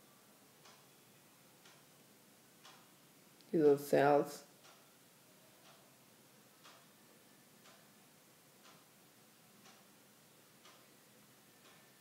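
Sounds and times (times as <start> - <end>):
clock ticking: 0.6 - 1.0, 1.6 - 2.0, 2.6 - 3.0, 4.4 - 5.0, 5.6 - 5.9, 6.5 - 7.0, 7.6 - 9.0, 9.6 - 10.9, 11.6 - 12.0.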